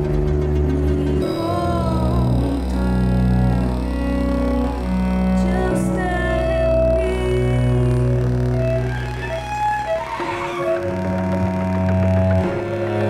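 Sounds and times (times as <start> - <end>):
bowed cello sustained notes: 0.0 - 13.0
deep bass drone: 0.0 - 13.0.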